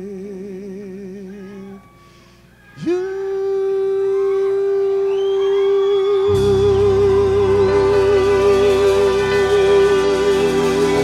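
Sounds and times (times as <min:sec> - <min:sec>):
faint band: 0:01.2 - 0:11.0
electric guitar sustained note: 0:06.3 - 0:11.0.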